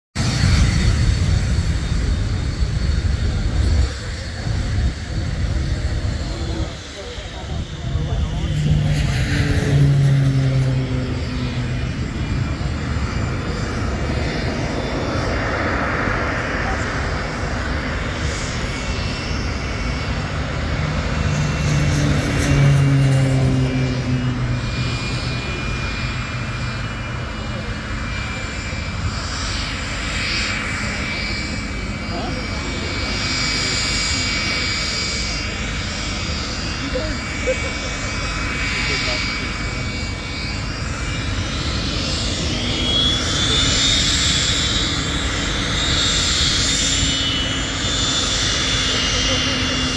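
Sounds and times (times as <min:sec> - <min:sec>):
turbojet engine whine: 0:00.1 - 0:49.9.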